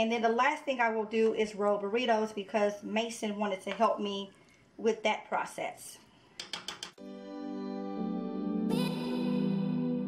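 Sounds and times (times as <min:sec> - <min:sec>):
background music with held chords: 0:07.0 - 0:10.0.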